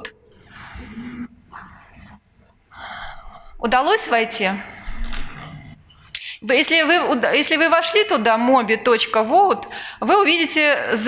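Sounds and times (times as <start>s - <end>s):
soft breaths close to microphone: 0.3s - 6.4s.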